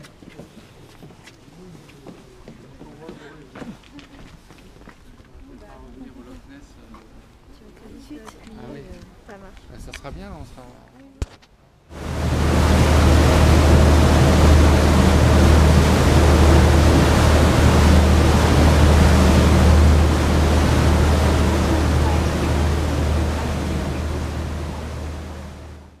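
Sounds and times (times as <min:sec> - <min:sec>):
boat engine droning: 0:11.9 - 0:26.0
churning wake water rushing: 0:11.9 - 0:26.0.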